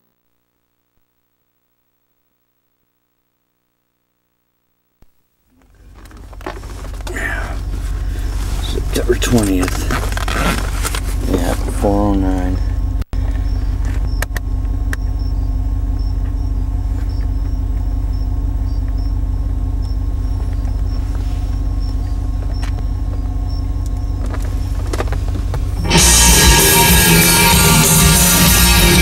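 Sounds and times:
vehicle engine rumble: 0:05.5 - 0:29.0
rock music with guitar and drums: 0:25.8 - 0:29.0.

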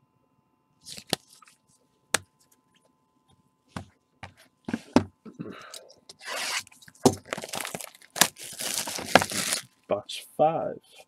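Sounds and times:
plastic and cardboard tearing: 0:06.2 - 0:09.7.

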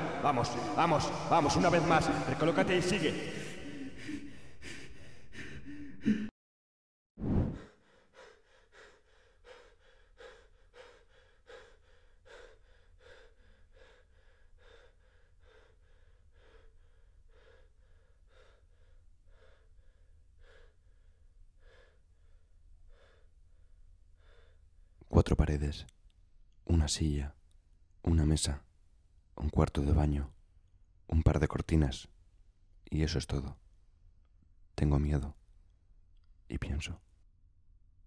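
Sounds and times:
man breathing hard: 0:00.0 - 0:02.4, 0:03.0 - 0:06.3, 0:07.6 - 0:25.0.

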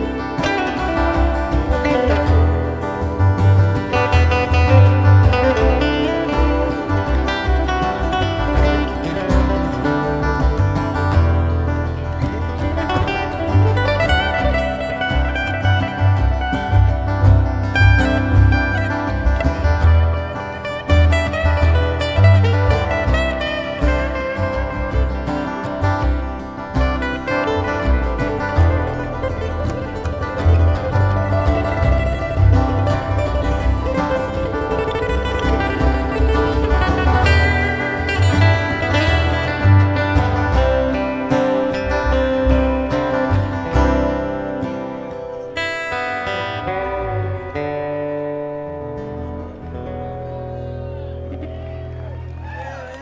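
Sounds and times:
acoustic guitars: 0:00.0 - 0:53.0
upright bass: 0:00.0 - 0:53.0.

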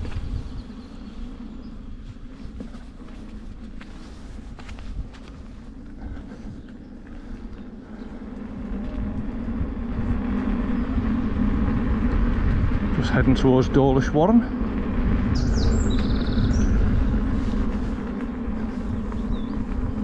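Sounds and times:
electric motor and tyre hum: 0:00.0 - 0:20.0
wind rumbling on microphone: 0:00.0 - 0:20.0.

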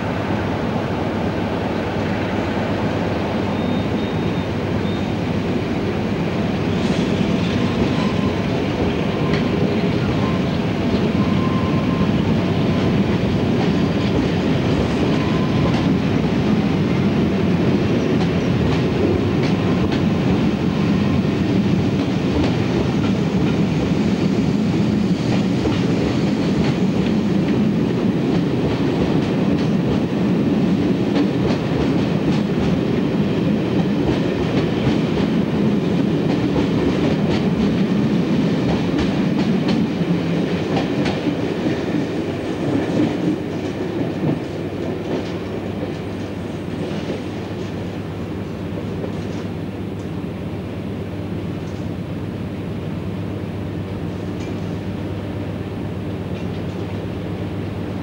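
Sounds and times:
diesel locomotive engine: 0:00.0 - 0:58.0
train wheels clicking over rails: 0:06.4 - 0:50.1.

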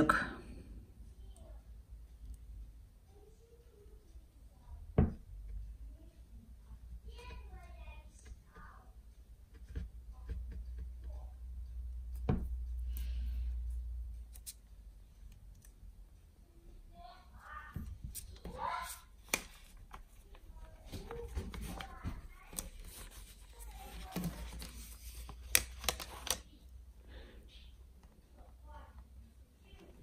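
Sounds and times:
paper receipt rustling: 0:18.1 - 0:26.5.

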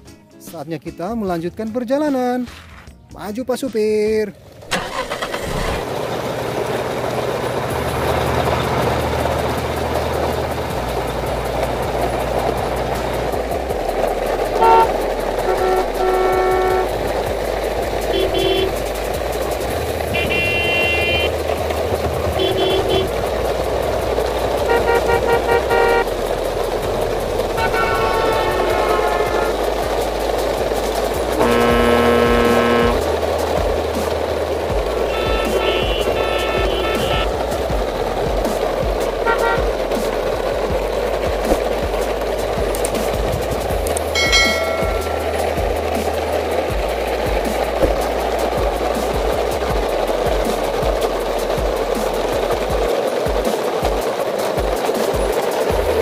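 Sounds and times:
toy truck wheels crunching on gravel: 0:02.1 - 0:03.0, 0:04.4 - 0:56.0
low music bass line: 0:07.7 - 0:52.9
vehicle horn toots: 0:14.6 - 0:17.0, 0:18.1 - 0:18.8, 0:20.1 - 0:21.4, 0:22.3 - 0:23.2, 0:24.7 - 0:26.1, 0:27.6 - 0:29.6, 0:31.4 - 0:33.0, 0:35.0 - 0:37.3, 0:39.2 - 0:39.6.

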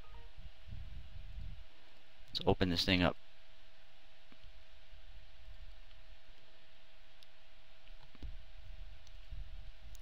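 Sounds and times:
brief faint tones: 0:00.0 - 0:00.4
steady thin hum: 0:00.0 - 0:10.0.

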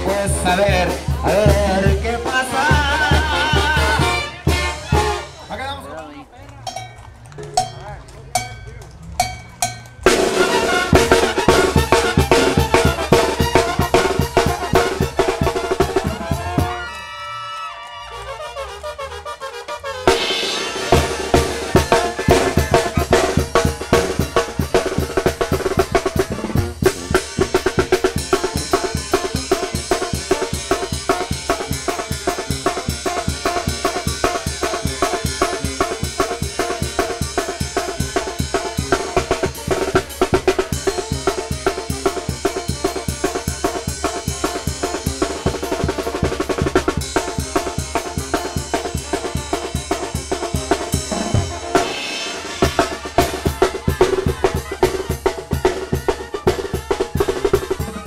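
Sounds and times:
band music with fast drum beat: 0:00.0 - 0:17.1, 0:17.7 - 0:58.0.

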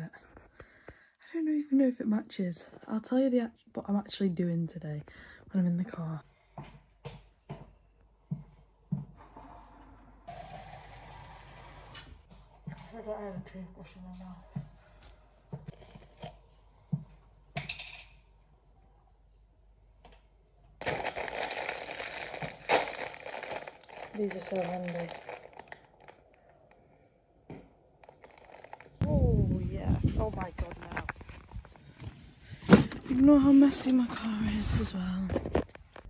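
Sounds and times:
plastic wrapper crinkling: 0:20.8 - 0:26.8, 0:28.0 - 0:29.0.

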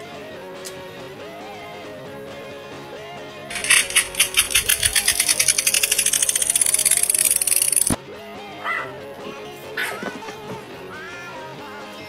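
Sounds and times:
fast rattling clicks: 0:03.5 - 0:08.0.

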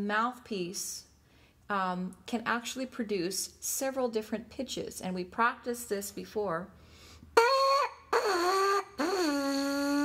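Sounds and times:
lips buzzing into trumpet mouthpiece: 0:07.4 - 0:10.0.

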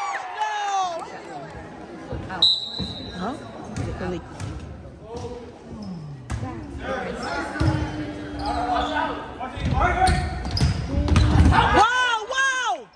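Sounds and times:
sneakers squeaking on court: 0:02.1 - 0:06.6, 0:07.6 - 0:11.6.

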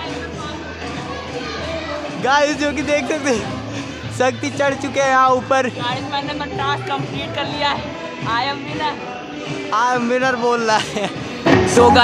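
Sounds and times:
children playing and talking: 0:00.0 - 0:12.0
faint music: 0:00.0 - 0:12.0.

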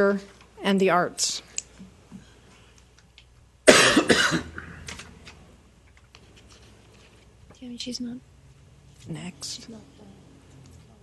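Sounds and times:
person coughing: 0:03.7 - 0:04.9.

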